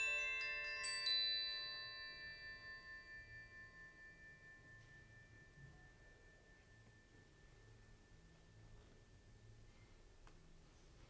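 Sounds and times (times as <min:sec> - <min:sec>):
metal percussion ringing: 0:00.0 - 0:09.6.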